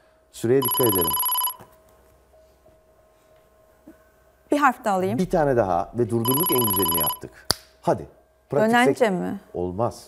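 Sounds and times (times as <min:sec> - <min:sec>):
faint steady hum: 0:00.0 - 0:10.0
high electronic beep: 0:00.6 - 0:01.6, 0:06.2 - 0:07.2.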